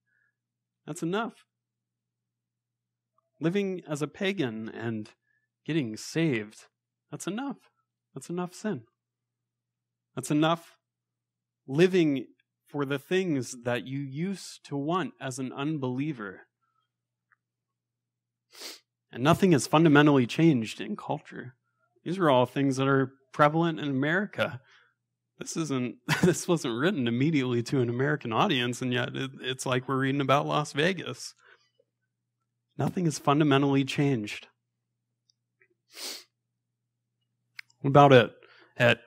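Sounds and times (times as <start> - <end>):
man's sharp in-breath: 35.9 - 36.3.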